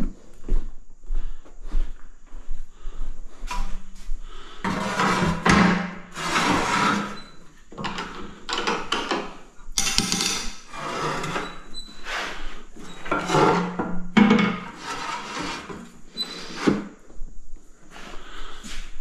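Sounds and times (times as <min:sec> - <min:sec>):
tile scraping on tile cutter: 0:04.7 - 0:07.3, 0:09.9 - 0:12.4, 0:14.6 - 0:16.8.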